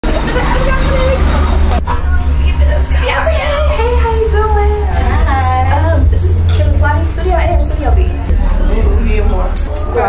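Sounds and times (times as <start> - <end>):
indistinct voices: 0.0 - 10.0
low traffic rumble: 0.0 - 10.0.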